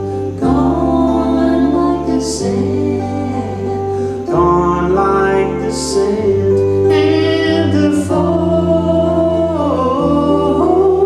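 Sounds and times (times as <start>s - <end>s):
electric bass guitar: 0.0s - 11.0s
voices singing: 0.0s - 11.0s.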